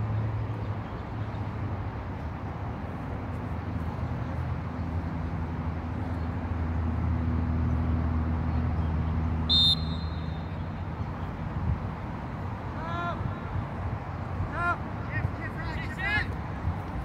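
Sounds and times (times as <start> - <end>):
low engine hum: 0.0 - 17.0
referee's whistle blast: 9.5 - 10.5
person shouting: 12.8 - 13.2.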